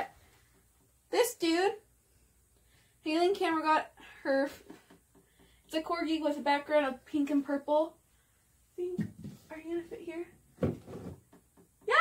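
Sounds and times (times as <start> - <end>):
painting thumping against wall: 10.6 - 11.9.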